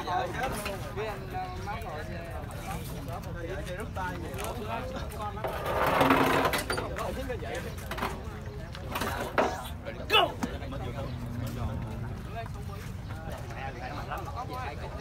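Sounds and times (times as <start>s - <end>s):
crowd chattering: 0.0s - 15.0s.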